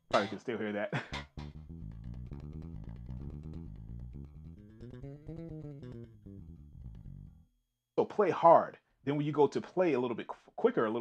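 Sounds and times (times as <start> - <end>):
unamplified bass guitar plucking: 0.0 - 0.4, 1.0 - 7.5
strings buzzing against frets: 1.1 - 7.4.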